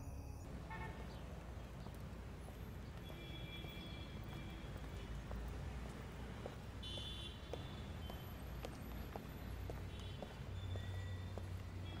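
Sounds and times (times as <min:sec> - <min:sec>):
footsteps on pavement: 0:01.0 - 0:12.0.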